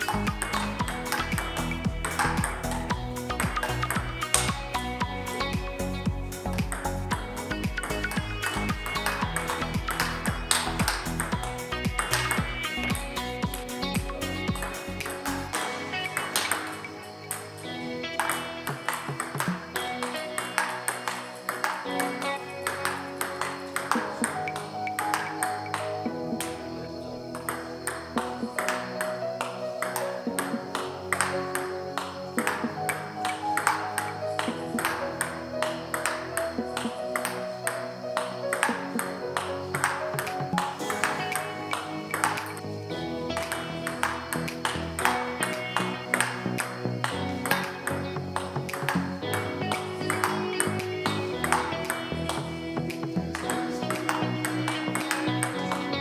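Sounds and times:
table tennis ball clicking: 0:00.0 - 0:05.1, 0:06.5 - 0:26.6, 0:27.3 - 0:42.7, 0:43.4 - 0:55.8
background music with steady beat: 0:00.0 - 0:56.0.

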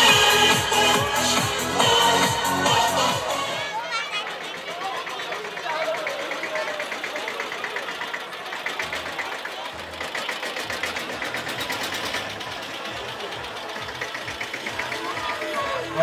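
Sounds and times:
crowd voices: 0:00.0 - 0:16.0
tractor engine clattering: 0:04.0 - 0:16.0.

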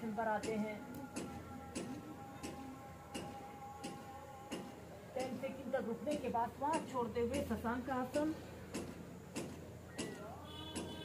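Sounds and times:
even ticking: 0:00.4 - 0:11.0.

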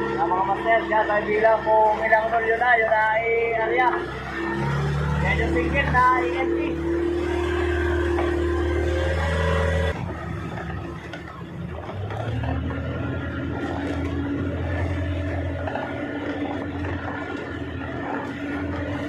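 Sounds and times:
boat engine running: 0:00.0 - 0:19.0.

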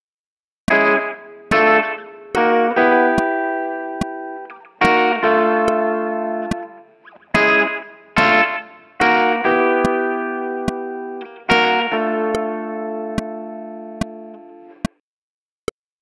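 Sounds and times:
electric guitar chords ringing: 0:00.7 - 0:14.8
faint metronome click: 0:00.7 - 0:15.0.

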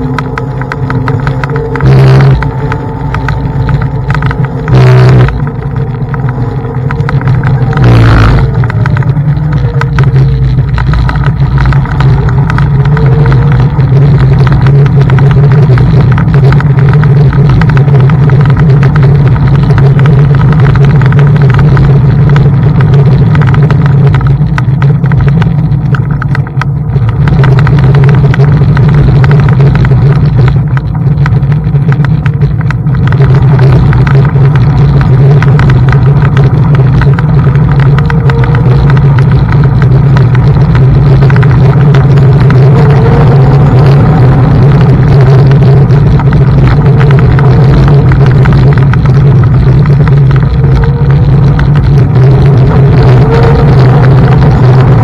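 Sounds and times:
electric scooter rush and rumble: 0:00.0 - 0:55.0.

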